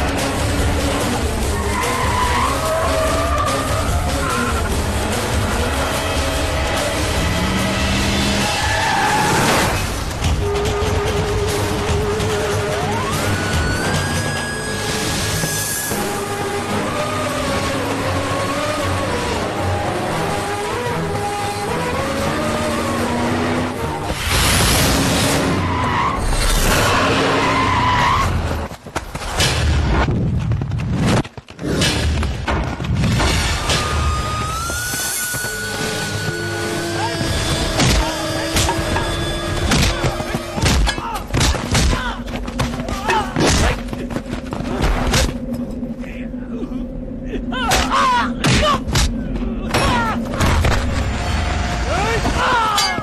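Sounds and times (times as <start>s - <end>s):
tyres skidding and squealing: 0.0s - 29.6s, 33.0s - 44.7s, 47.5s - 53.0s
tyres squealing: 1.5s - 4.8s, 33.8s - 43.4s.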